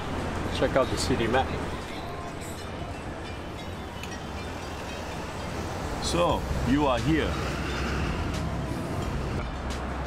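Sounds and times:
city street traffic rumble: 0.0s - 10.0s.

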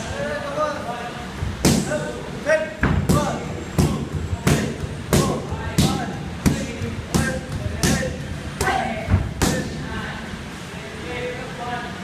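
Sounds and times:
strikes smacking on pads: 1.6s - 2.0s, 2.8s - 9.7s.

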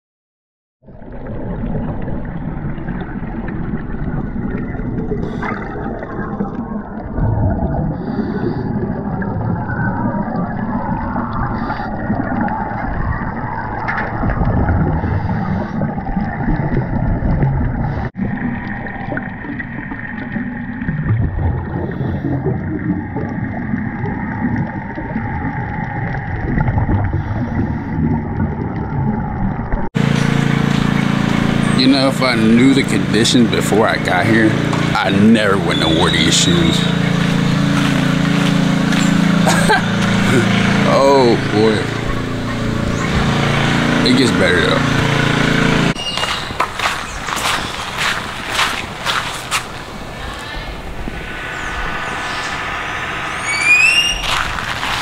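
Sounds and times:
muffled underwater water noise: 0.8s - 55.0s.

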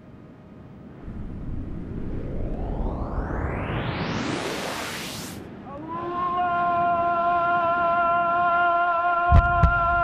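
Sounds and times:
deep rumble: 1.0s - 4.5s
hissing whoosh rising in pitch: 1.0s - 5.6s.

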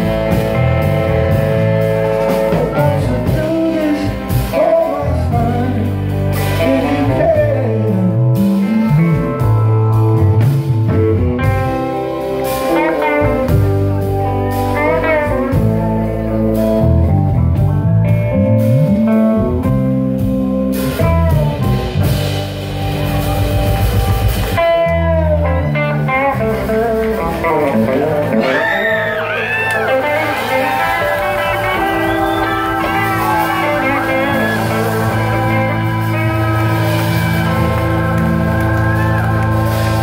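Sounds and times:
bass guitar: 0.0s - 40.0s
drums: 0.0s - 40.0s
electric guitar lead lines: 0.0s - 40.0s.

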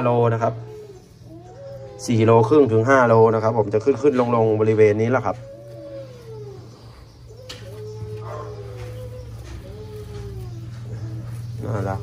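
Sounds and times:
bamboo rat whining calls: 0.0s - 12.0s.

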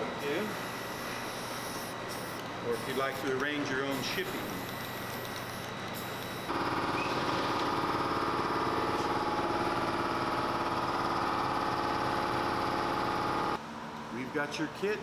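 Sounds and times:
machine humming: 0.0s - 13.6s.

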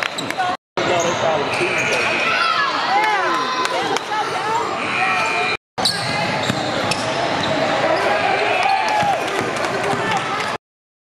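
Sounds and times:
players' voices echoing: 0.3s - 10.6s
basketball bouncing on court: 5.9s - 7.6s.

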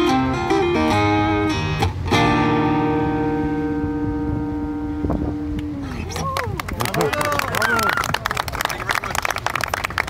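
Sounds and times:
acoustic guitar chord ringing: 0.0s - 6.1s.

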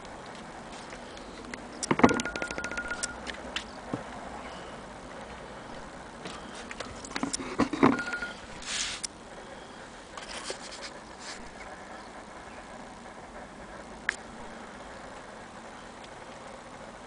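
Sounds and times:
handling clicks and knocks: 6.7s - 8.4s
short hiss: 8.6s - 9.1s.

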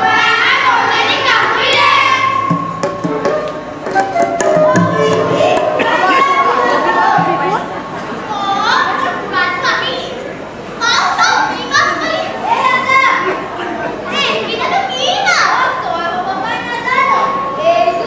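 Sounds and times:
children speaking and calling out: 0.0s - 18.0s.

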